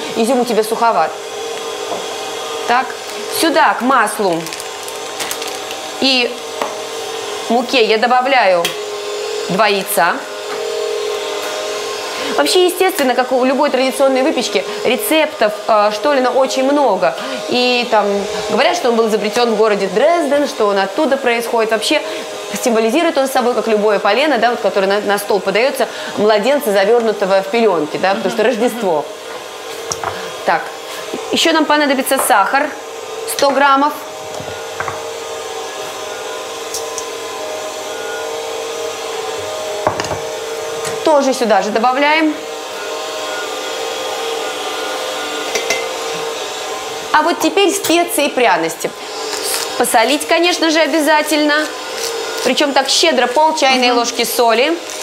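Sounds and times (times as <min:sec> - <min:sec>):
stand mixer motor whining: 0:00.0 - 0:55.0
stand mixer motor hum: 0:00.9 - 0:07.5.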